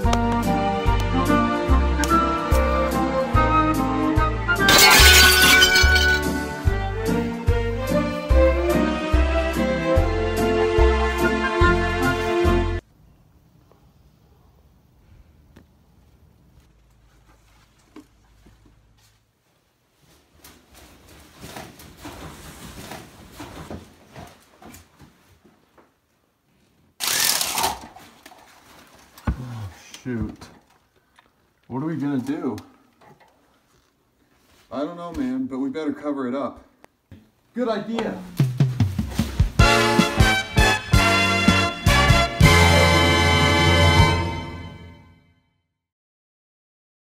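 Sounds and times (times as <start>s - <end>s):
glass breaking: 4.7s - 6.4s
glass window cracking crash: 4.7s - 6.4s
shuffling and handling noises: 16.0s - 35.4s, 37.9s - 39.6s.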